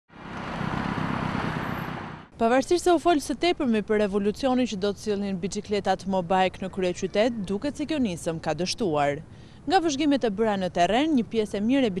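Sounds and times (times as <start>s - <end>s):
cars passing: 0.1s - 2.4s.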